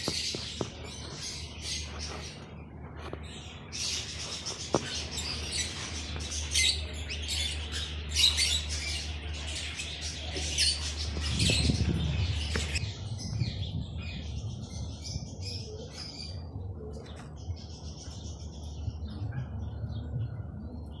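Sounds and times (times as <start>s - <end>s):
birds chirping and squawking: 0.0s - 21.0s
steady low hum: 0.0s - 21.0s.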